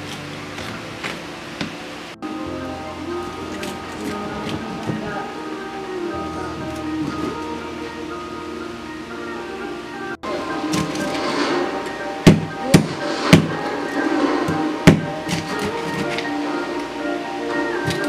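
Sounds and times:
background music: 0.0 - 18.0.

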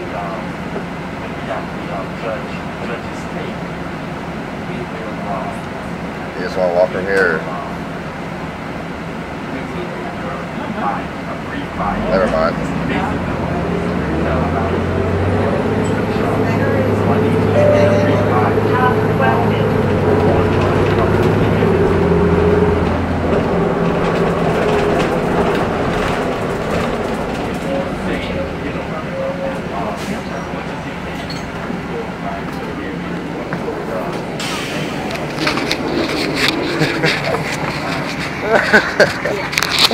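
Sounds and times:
bus engine hum: 0.0 - 39.9
passengers talking: 0.0 - 39.9
road and cabin rumble: 0.0 - 39.9.

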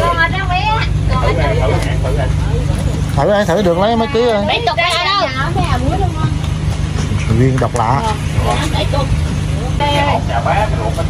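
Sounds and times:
people talking: 0.0 - 11.0
steady low rumble: 0.0 - 11.0.

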